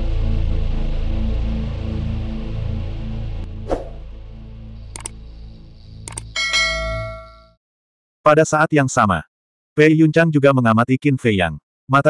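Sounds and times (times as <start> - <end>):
mouse-click sound effects: 4.9 - 5.2, 6.0 - 6.4
bright bell ding: 6.4 - 7.6.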